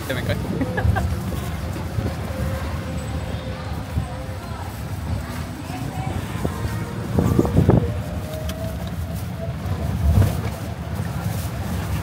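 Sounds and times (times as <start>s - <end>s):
tricycle ride rumble: 0.0s - 12.0s.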